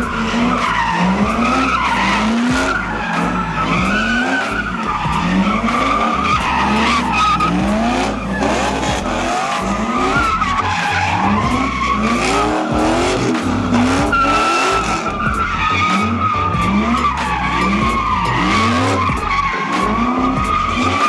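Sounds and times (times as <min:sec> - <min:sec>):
car tyres squealing: 0:00.0 - 0:21.0
engine revving: 0:00.0 - 0:21.0.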